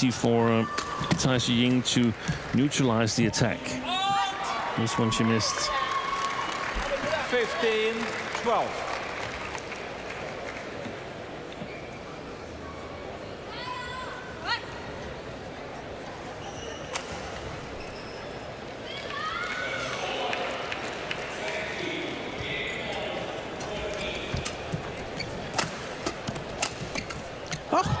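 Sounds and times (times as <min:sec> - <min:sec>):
shoes squeaking on court: 0:16.3 - 0:17.0, 0:17.7 - 0:18.4, 0:23.8 - 0:28.0.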